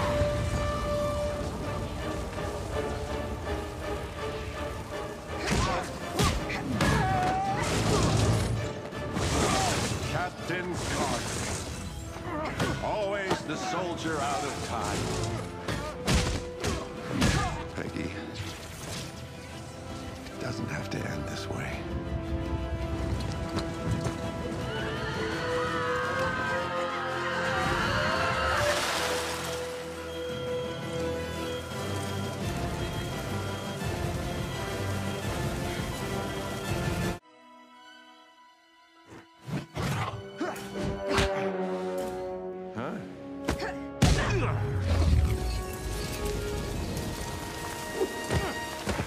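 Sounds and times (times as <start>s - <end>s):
orchestral film score: 0.0s - 49.0s
gliding neigh-like cries: 24.6s - 28.8s.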